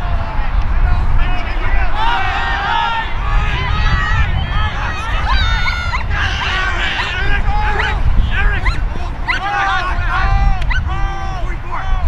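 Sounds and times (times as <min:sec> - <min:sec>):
low rumble: 0:00.0 - 0:12.0
players shouting calls: 0:00.0 - 0:12.0.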